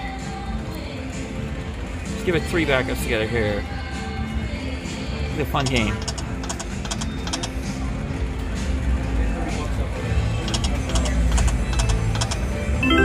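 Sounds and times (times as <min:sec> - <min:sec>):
slot machine reels clicking: 0:05.6 - 0:07.6, 0:10.4 - 0:13.0
crowd chatter: 0:07.3 - 0:11.9
machine music: 0:12.2 - 0:13.0
slot machine win chime: 0:12.8 - 0:13.0.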